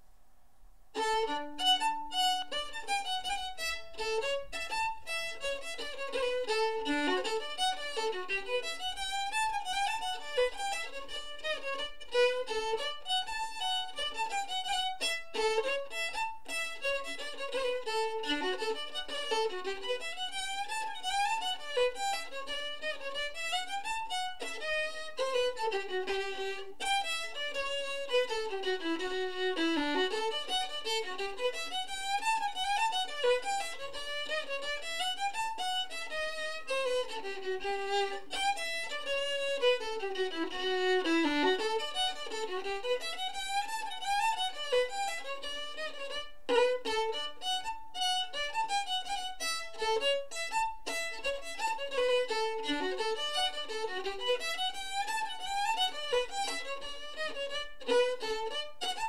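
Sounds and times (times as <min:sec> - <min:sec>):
solo violin dance tune: 0:00.9 - 0:59.0.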